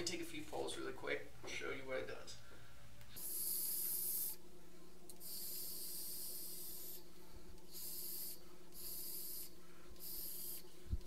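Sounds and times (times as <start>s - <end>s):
hissing vape draws: 3.2s - 4.4s, 5.2s - 11.0s.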